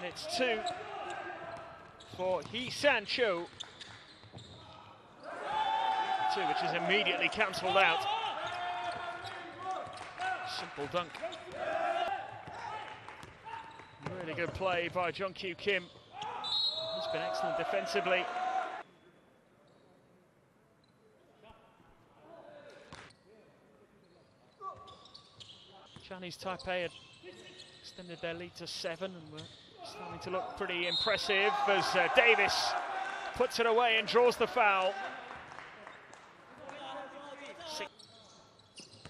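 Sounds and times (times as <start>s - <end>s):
indoor arena background noise: 0.0s - 39.0s
man's voice: 30.0s - 35.1s.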